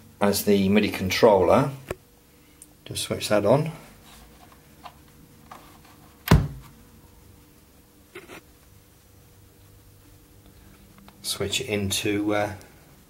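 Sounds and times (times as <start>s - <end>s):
faint steady hum: 0.0s - 13.0s
keyboard thunk: 6.3s - 6.6s.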